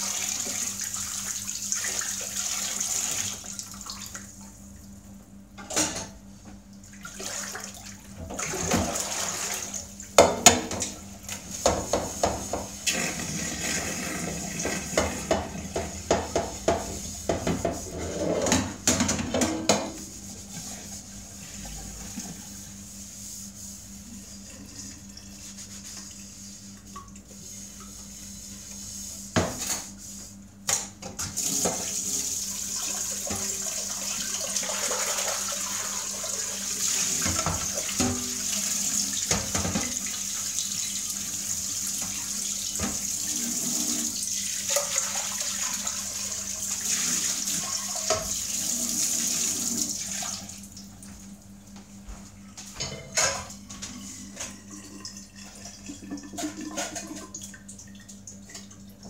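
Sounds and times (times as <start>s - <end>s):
tap running into steel sink: 11.6s - 12.7s.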